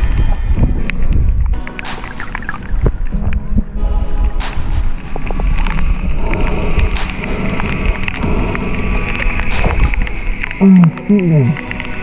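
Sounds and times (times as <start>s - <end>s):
crackling clicks: 0.0s - 12.0s
underwater rumble of moving water: 0.0s - 12.0s
sharp cracks: 1.6s - 3.4s, 4.4s - 12.0s.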